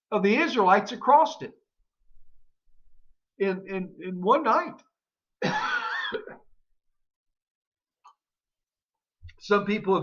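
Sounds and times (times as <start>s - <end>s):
man coughing: 5.4s - 6.4s.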